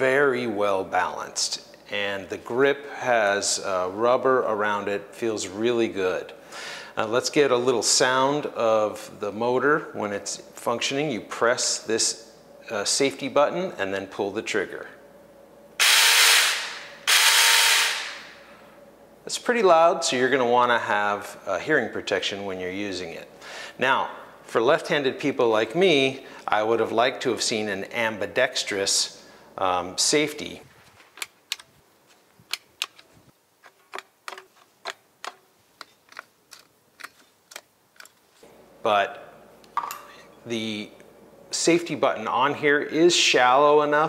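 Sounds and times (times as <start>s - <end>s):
electric chainsaw running: 15.8s - 18.4s.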